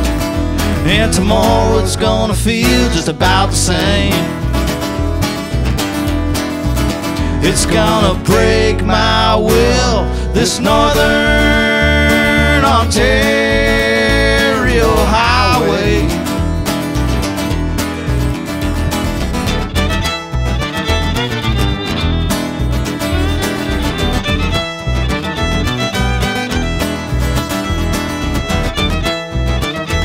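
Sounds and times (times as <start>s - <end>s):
acoustic guitar: 0.0s - 30.0s
fiddle playing lead: 4.2s - 30.0s.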